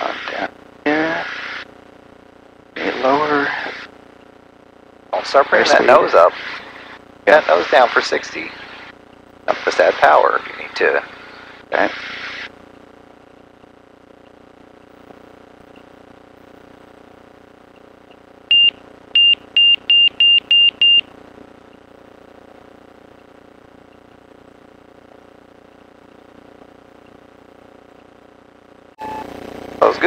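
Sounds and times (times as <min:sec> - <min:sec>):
low aircraft engine drone: 0:02.6 - 0:04.0, 0:05.1 - 0:14.2
high electronic warning beeps: 0:18.5 - 0:21.0.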